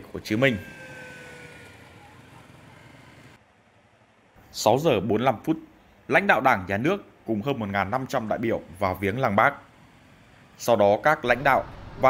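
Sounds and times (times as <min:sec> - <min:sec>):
faint street traffic: 0:00.0 - 0:12.0.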